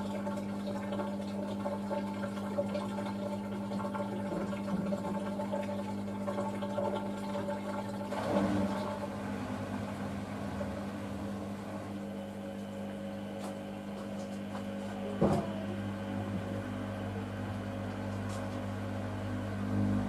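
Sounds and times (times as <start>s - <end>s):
water sloshing in drum: 0.0s - 12.1s
washing machine hum: 0.0s - 20.0s.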